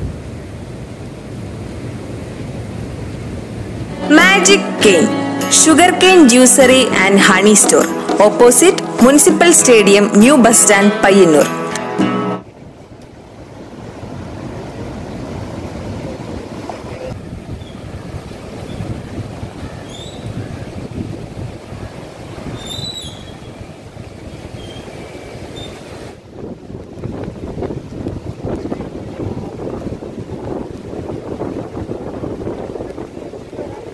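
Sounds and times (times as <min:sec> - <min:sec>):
sea waves breaking on shore: 0:12.5 - 0:33.9
wind buffeting microphone: 0:12.5 - 0:33.9.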